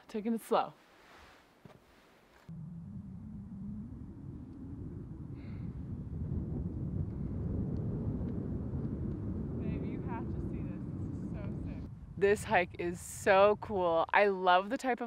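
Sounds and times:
wind buffeting microphone: 2.5 - 15.0.

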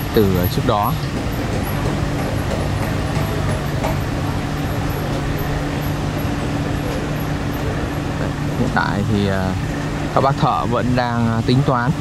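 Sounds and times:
diesel engine humming: 0.0 - 12.0.

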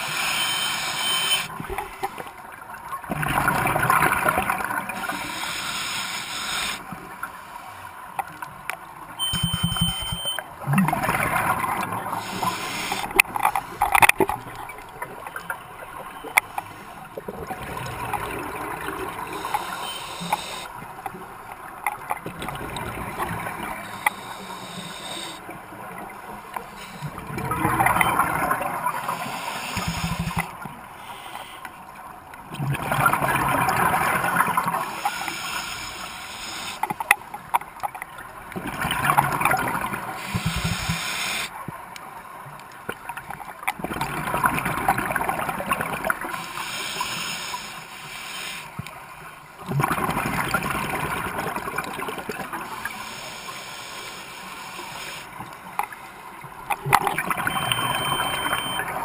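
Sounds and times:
scuba regulator breathing underwater: 0.0 - 1.5, 5.0 - 7.7, 12.1 - 13.2, 18.7 - 20.7, 23.7 - 25.5, 29.0 - 31.8, 34.7 - 36.8, 40.1 - 41.5, 46.3 - 48.8, 52.8 - 55.4
gurgling exhaled bubbles: 27.1 - 30.6, 49.6 - 52.9.

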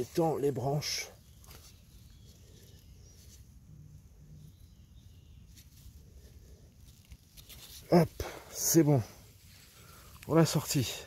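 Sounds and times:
hand digging in dry leaves: 5.3 - 10.8.

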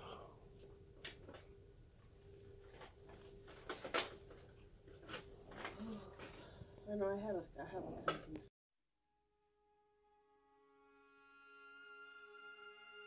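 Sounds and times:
faint hum: 0.0 - 8.4.

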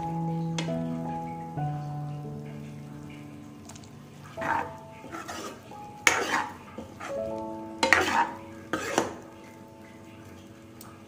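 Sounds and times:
metal ladle scraping a pan: 4.2 - 9.5.

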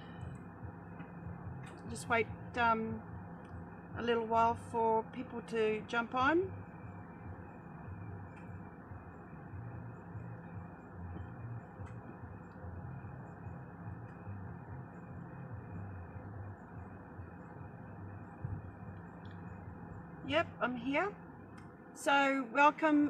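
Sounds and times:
electric fan running: 0.0 - 23.0.

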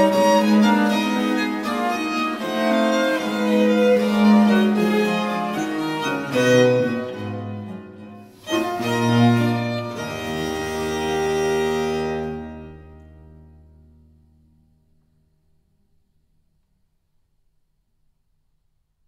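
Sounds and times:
baroque string chamber music: 0.0 - 14.0.

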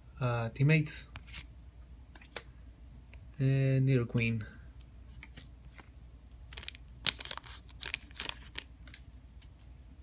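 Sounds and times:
foil wrapper crinkling: 6.5 - 9.0.

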